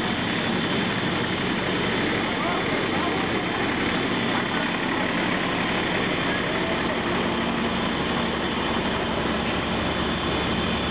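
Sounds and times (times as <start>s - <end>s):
fire engine running at low revs: 0.0s - 10.9s.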